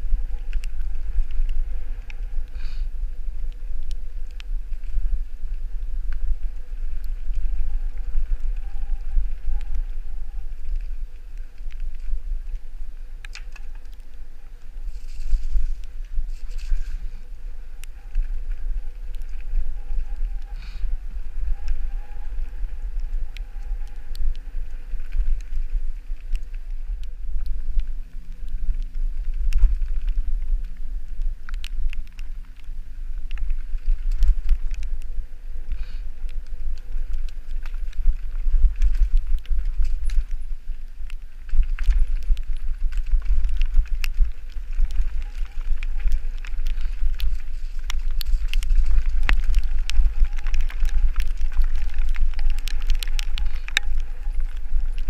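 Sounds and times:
wind rumble on microphone: 0.0s - 55.0s.

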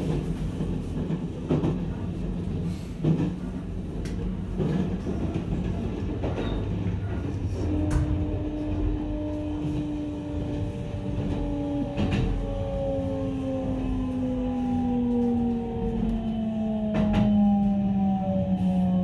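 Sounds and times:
train running gear rumble: 0.0s - 19.0s.

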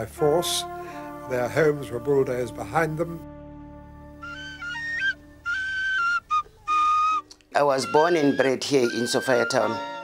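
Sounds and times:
tin whistle tune: 4.2s - 10.0s.

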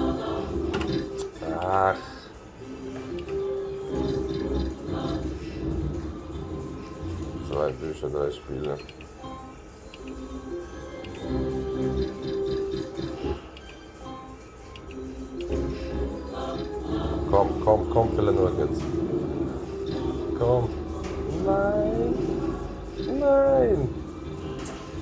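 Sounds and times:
slot machine electronic melody: 6.0s - 25.0s.

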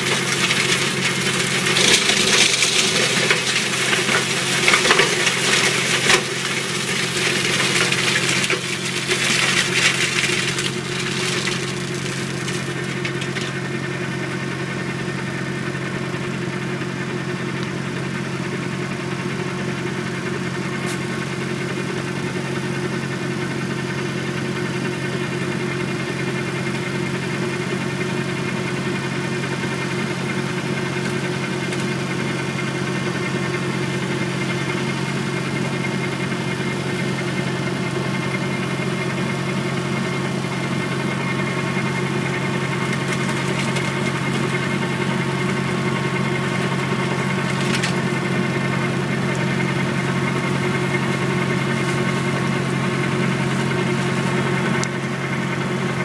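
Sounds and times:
flail mulcher shredding branches: 0.0s - 15.5s, 20.8s - 21.2s, 29.4s - 56.0s
tractor engine running under load: 0.0s - 56.0s.

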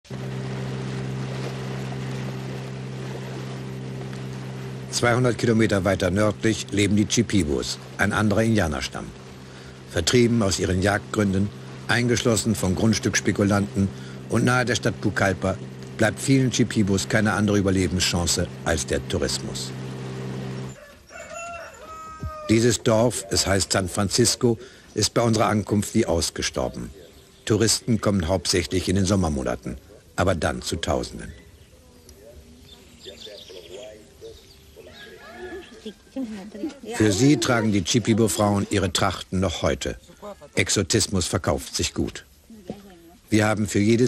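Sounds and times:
boat motor running: 0.0s - 44.0s
steady hiss: 4.3s - 20.4s, 22.3s - 44.0s
rooster crowing: 20.7s - 22.8s, 34.8s - 37.2s.

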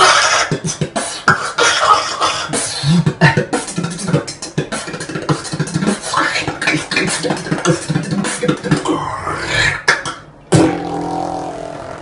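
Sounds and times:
beatboxed held bass note: 0.0s - 12.0s
beatboxed sharp hit: 0.0s - 12.0s.

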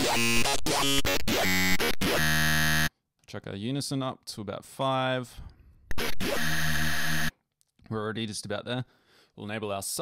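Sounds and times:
bright buzzy synth note: 5.9s - 7.3s.

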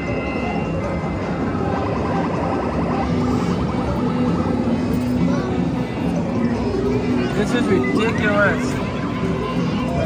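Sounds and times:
game machine music and jingles: 0.0s - 4.0s, 6.9s - 10.0s
crowd chatter: 0.0s - 10.0s.

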